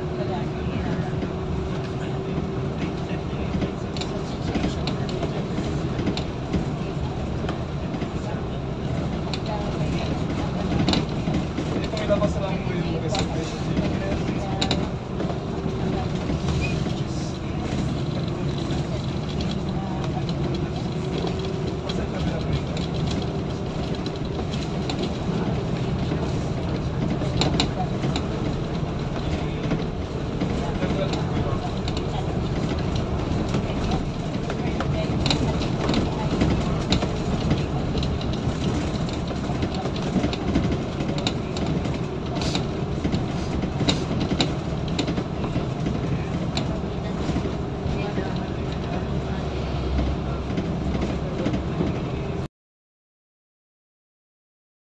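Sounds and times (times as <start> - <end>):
vehicle engine and tyre noise: 0.0 - 52.5.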